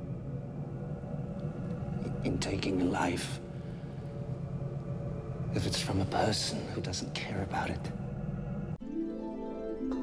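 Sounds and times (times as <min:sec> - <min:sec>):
low background rumble: 0:00.0 - 0:08.8.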